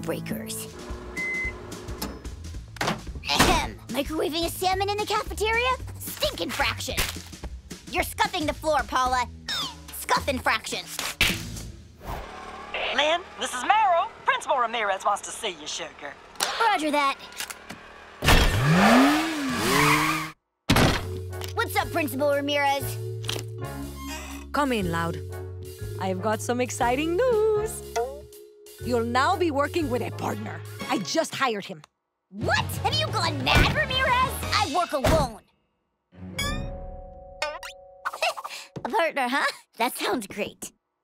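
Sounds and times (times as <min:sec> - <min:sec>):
background music: 0:00.0 - 0:12.0, 0:20.8 - 0:31.7, 0:32.4 - 0:35.4, 0:36.1 - 0:38.0
microwave oven beeping: 0:00.9 - 0:02.3
cartoon motor whine: 0:12.0 - 0:20.4.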